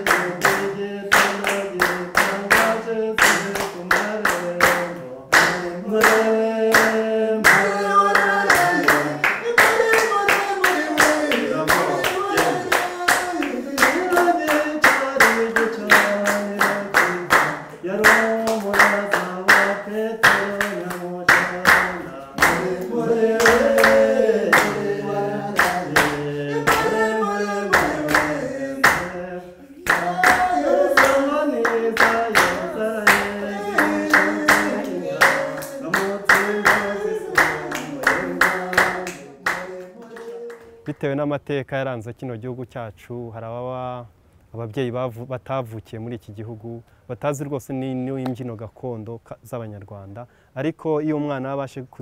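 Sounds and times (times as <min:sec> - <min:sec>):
rhythmic hand clapping: 0:00.0 - 0:41.0
children singing in unison: 0:22.0 - 0:40.5.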